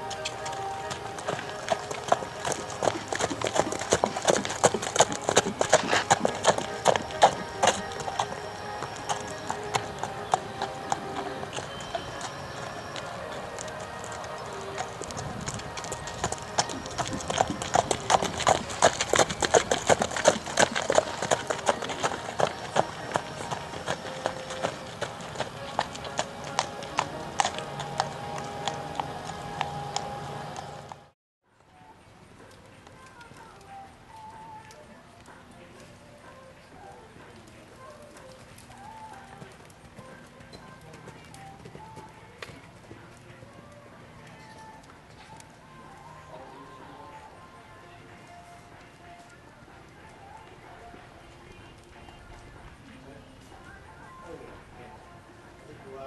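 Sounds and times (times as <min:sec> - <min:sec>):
horse hooves on pavement: 0:00.0 - 0:31.1, 0:32.4 - 0:55.6
background music: 0:00.0 - 0:56.0
distant voices: 0:00.0 - 0:56.0.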